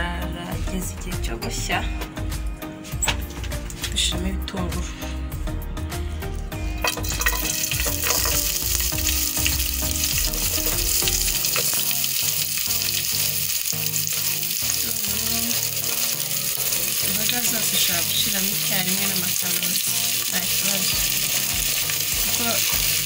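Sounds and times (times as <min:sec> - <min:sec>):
onions sizzling in oil: 0:06.8 - 0:23.0.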